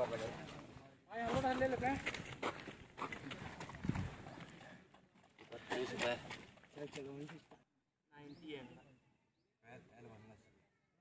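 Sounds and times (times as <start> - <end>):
footsteps on dirt ground: 0.0 - 7.7.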